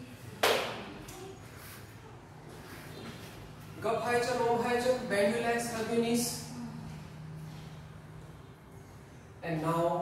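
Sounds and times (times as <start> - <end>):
sharp hand clap: 0.4 - 0.9.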